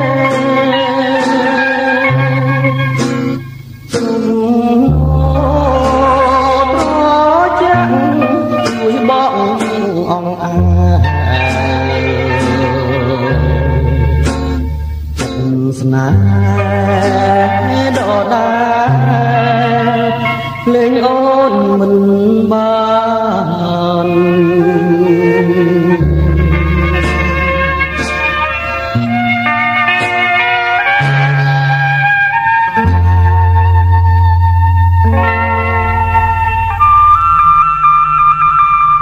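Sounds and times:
pop song with long held notes: 0:00.0 - 0:39.0
soft bass line: 0:00.0 - 0:39.0
flute holding high note: 0:24.5 - 0:39.0.

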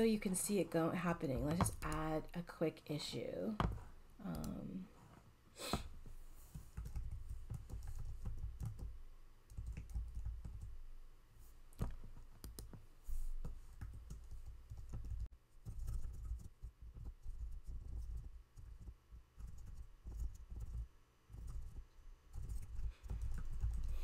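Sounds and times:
computer keyboard typing: 0:06.6 - 0:10.8, 0:13.4 - 0:24.0.

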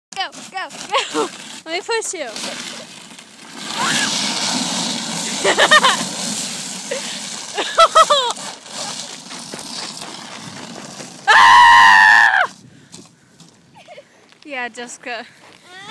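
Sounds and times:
plastic bin scraping over ice: 0:00.2 - 0:11.3
person squealing: 0:03.7 - 0:04.2, 0:11.3 - 0:12.5, 0:15.7 - 0:15.9
person screaming: 0:11.3 - 0:12.5.

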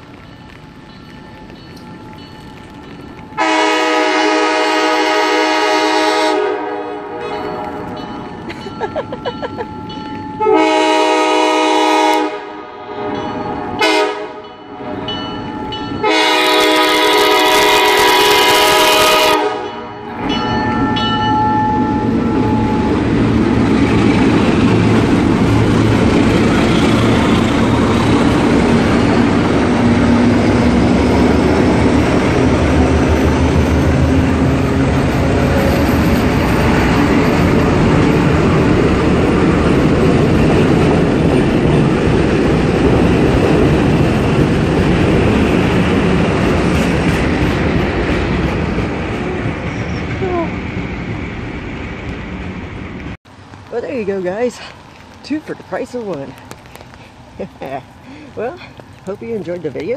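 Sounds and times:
train rumbling over rails: 0:00.0 - 0:59.9
diesel locomotive horn blasts: 0:03.4 - 0:08.0, 0:10.4 - 0:15.0, 0:16.0 - 0:20.2.

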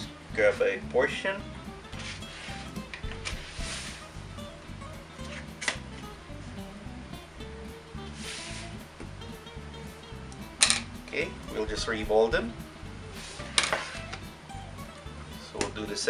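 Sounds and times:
light background music: 0:00.0 - 0:16.0
plastic scraper rubbing on dough: 0:02.0 - 0:04.1, 0:13.2 - 0:14.1.

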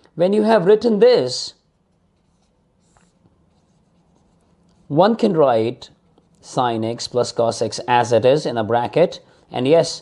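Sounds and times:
pen scratching on paper: 0:02.0 - 0:05.0.

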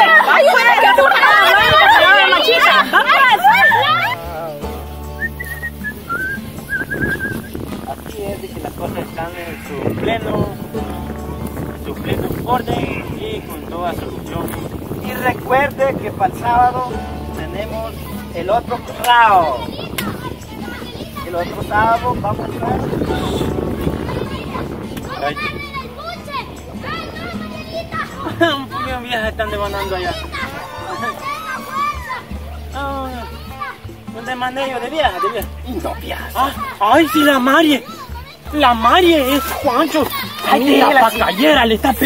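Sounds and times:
high whistled notes: 0:05.0 - 0:07.6.

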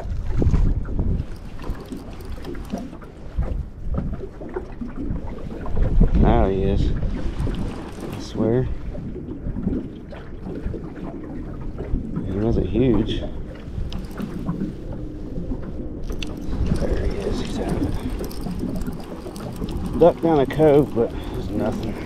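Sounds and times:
wind buffeting microphone: 0:00.0 - 0:22.0
fishing reel cranking: 0:01.2 - 0:03.0, 0:07.8 - 0:08.4, 0:13.8 - 0:14.6, 0:16.0 - 0:22.0.

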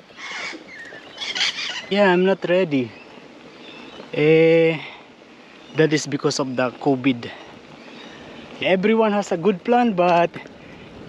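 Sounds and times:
parrot screeching calls: 0:00.1 - 0:01.9.

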